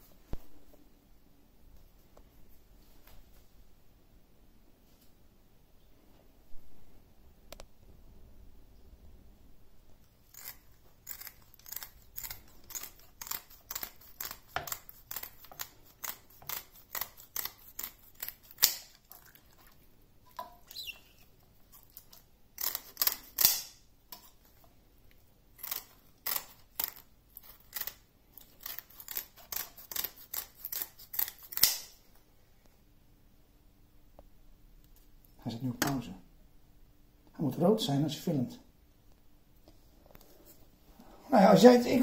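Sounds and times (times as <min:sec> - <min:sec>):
scissors snipping through fish fins: 0:10.3 - 0:19.1, 0:22.0 - 0:23.7, 0:25.6 - 0:31.9.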